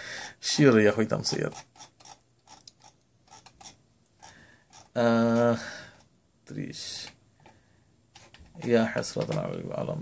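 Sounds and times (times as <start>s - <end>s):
person speaking: 0.2s - 1.9s, 4.8s - 7.2s, 8.2s - 10.0s
mouse scroll wheel clicking: 1.3s - 3.8s.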